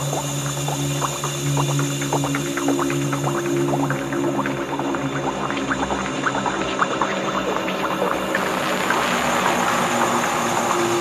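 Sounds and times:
sustained synth drone: 0:00.0 - 0:11.0.

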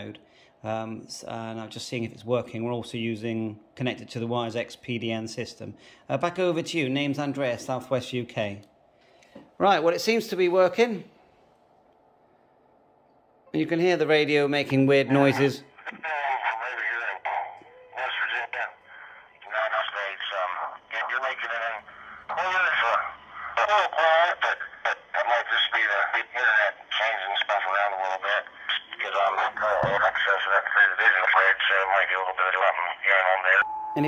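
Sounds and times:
tinny radio voice speaking: 0:15.0 - 0:18.8, 0:19.4 - 0:33.6.

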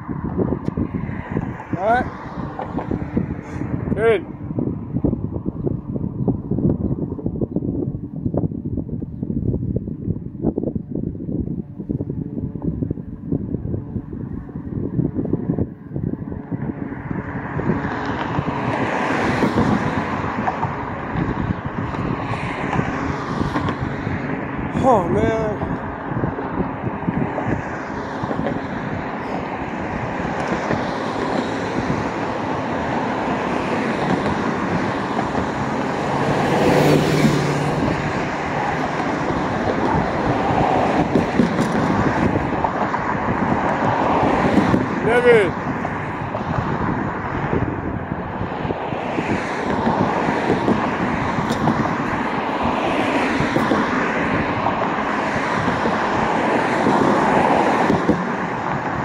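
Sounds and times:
street traffic: 0:00.0 - 0:59.0.

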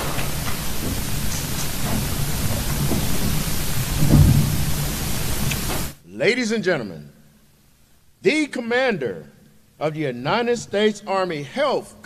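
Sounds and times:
low thump: 0:00.0 - 0:05.9.

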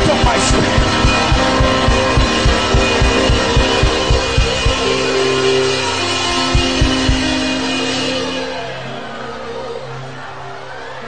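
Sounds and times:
low drum beat: 0:00.0 - 0:05.6, 0:06.2 - 0:07.4
sustained chords: 0:00.0 - 0:11.0.

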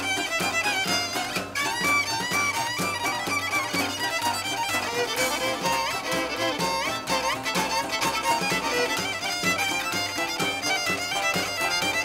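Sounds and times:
acoustic string band playing: 0:00.0 - 0:12.0
fiddle melody: 0:00.0 - 0:12.0.

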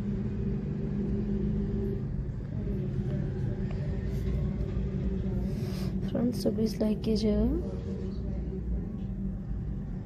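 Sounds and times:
constant hum: 0:00.0 - 0:10.0
low rumble: 0:00.0 - 0:10.0.

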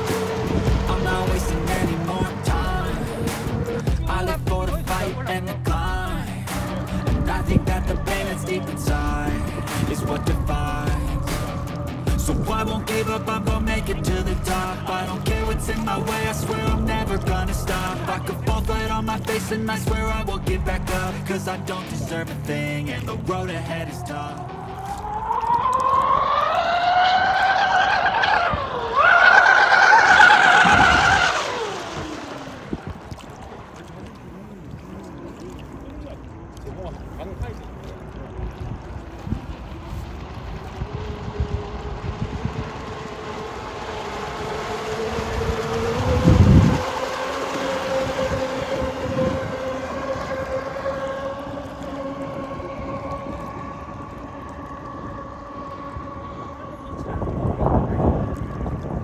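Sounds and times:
electric motors whining: 0:23.3 - 0:34.1, 0:38.4 - 0:59.0.

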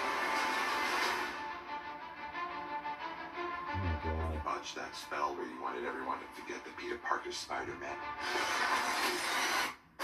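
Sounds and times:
trailer music: 0:00.0 - 0:05.0.

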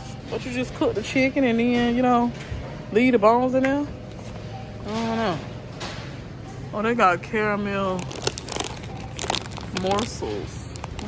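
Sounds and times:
plastic bags crinkling: 0:07.8 - 0:11.0.

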